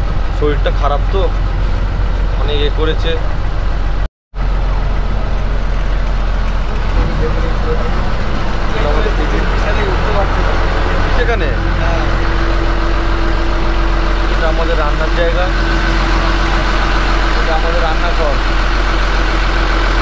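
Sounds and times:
low steady hum: 0.0 - 19.4
boat engine droning: 0.0 - 20.0.

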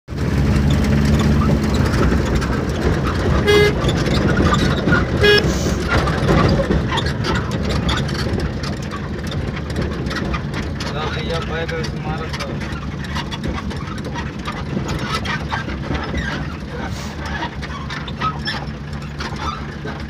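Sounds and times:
vehicle engine running: 0.1 - 20.0
car horn toots: 3.4 - 4.1, 5.2 - 5.9.

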